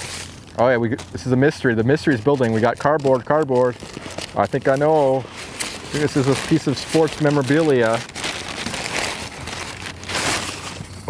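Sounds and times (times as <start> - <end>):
packing paper crinkling: 0.0 - 11.0.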